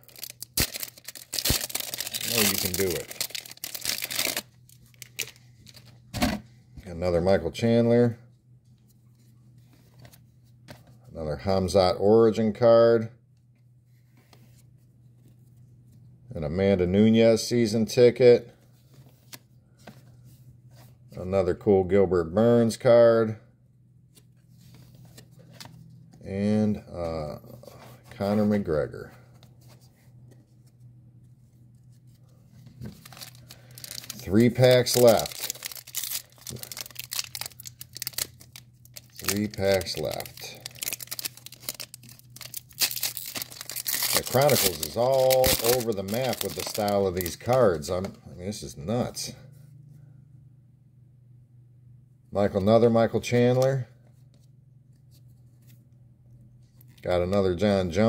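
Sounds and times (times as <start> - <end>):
cards rustling: 0.0 - 6.0, 31.8 - 48.2
low steady hum: 0.0 - 58.0.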